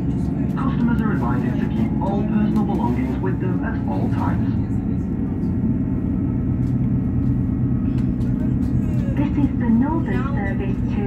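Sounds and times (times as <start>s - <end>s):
train diesel engine drone: 0.0s - 11.0s.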